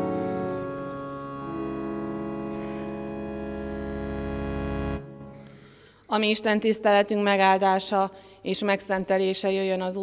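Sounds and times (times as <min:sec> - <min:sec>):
church organ chord: 0:00.0 - 0:05.8.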